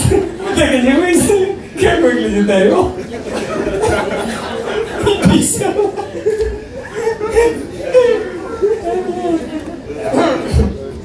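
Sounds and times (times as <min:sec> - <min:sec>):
indistinct audience chatter: 0:00.0 - 0:11.0.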